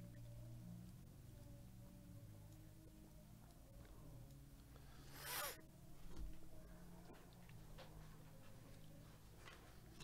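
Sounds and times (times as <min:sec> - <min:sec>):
faint steady hum: 0:00.0 - 0:10.0
ripping zip-like sound: 0:05.0 - 0:05.6.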